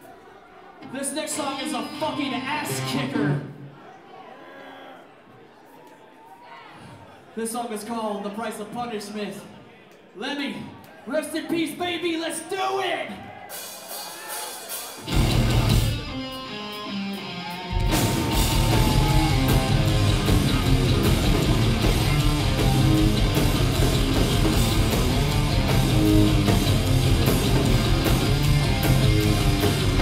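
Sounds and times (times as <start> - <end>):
hardcore band playing: 0.8 - 3.6, 13.5 - 30.0.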